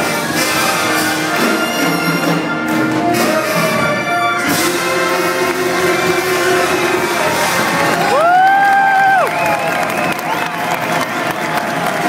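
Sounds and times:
big band held chord: 0.0s - 8.2s
audience cheering and applause: 4.5s - 12.0s.

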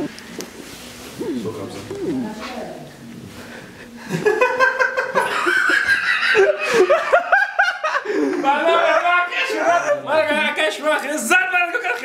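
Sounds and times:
people laughing: 3.9s - 10.1s.

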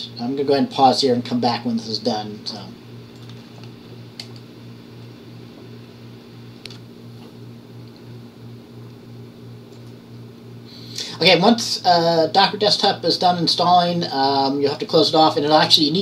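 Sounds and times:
low pulsing hum: 0.0s - 16.0s.

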